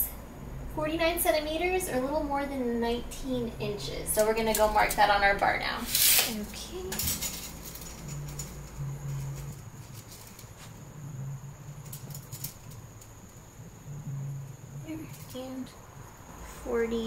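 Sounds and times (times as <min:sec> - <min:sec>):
faint high whine: 0:00.0 - 0:17.0.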